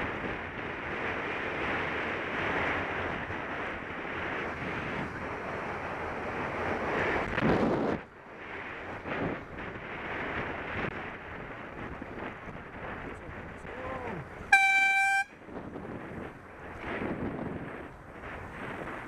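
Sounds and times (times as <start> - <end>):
road and wind noise: 0.0 - 19.0
car horn blast: 14.5 - 15.4.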